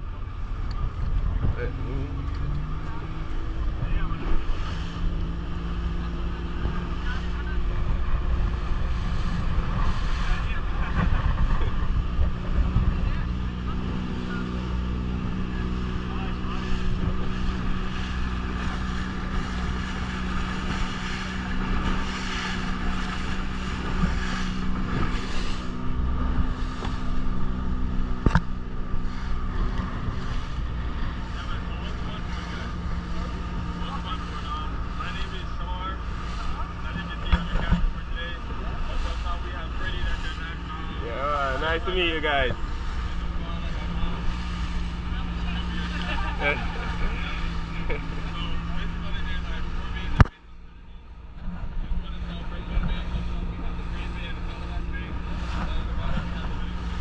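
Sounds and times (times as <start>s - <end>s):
outboard motor running: 0.0s - 57.0s
water rushing past hull: 0.0s - 57.0s
wind on microphone: 7.6s - 31.5s.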